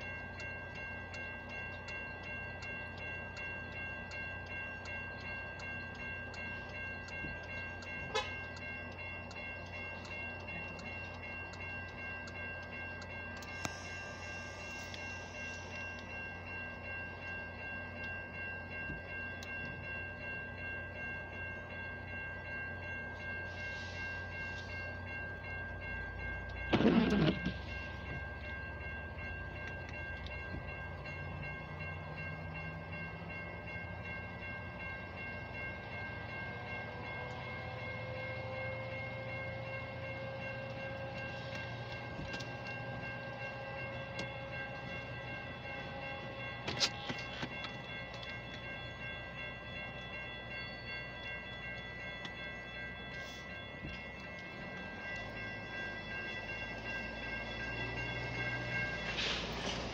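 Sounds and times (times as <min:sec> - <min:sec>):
railroad crossing bell ringing: 0:00.0 - 0:59.9
train rumbling past: 0:00.0 - 0:59.9.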